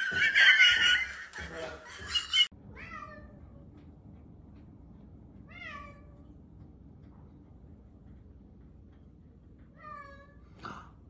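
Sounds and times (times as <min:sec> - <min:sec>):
cat meowing: 0:02.7 - 0:03.4.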